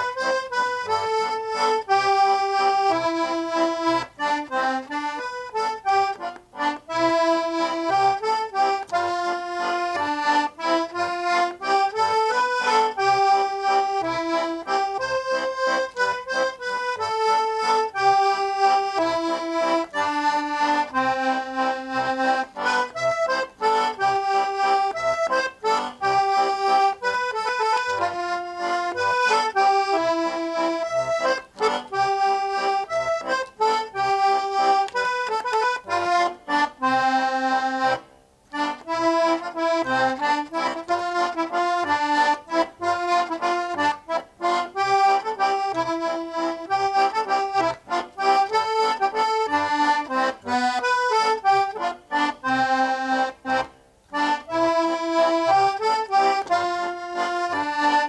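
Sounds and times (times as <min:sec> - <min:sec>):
button accordion playing a waltz: 0:00.0 - 0:58.0.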